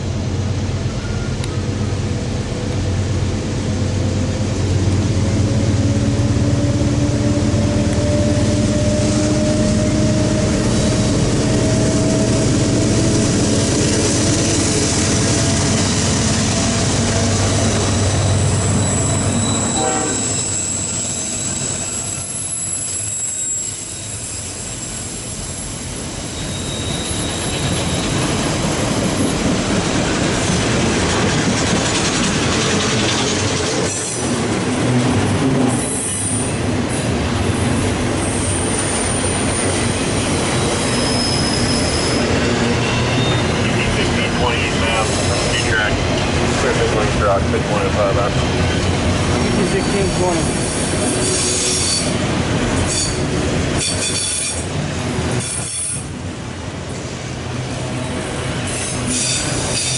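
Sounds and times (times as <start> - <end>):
diesel locomotive engines: 0.0 - 59.9
train wheel squeal: 0.8 - 1.7, 5.4 - 29.8, 31.2 - 34.4, 35.6 - 45.9, 47.8 - 54.7, 55.3 - 56.2, 57.9 - 59.9
train cars knocking: 27.2 - 38.6.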